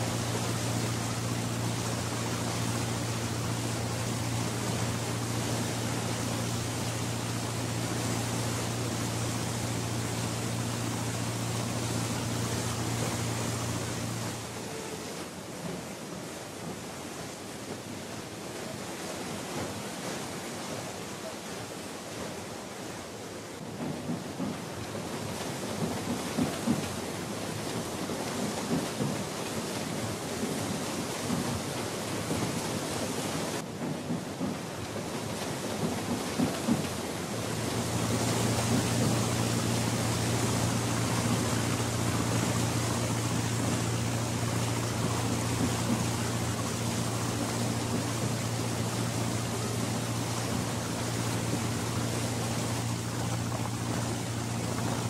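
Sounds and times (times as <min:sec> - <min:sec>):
low mechanical hum: 0:00.0 - 0:55.0
wind: 0:00.0 - 0:55.0
crackling rumbling noise: 0:35.8 - 0:55.0.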